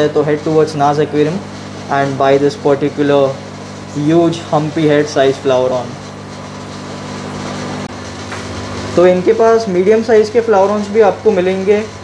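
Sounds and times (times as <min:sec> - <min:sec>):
aquarium pumps humming: 0:00.0 - 0:12.0.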